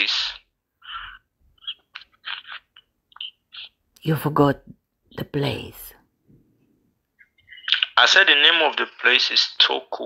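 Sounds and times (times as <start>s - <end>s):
man speaking: 7.6s - 10.0s.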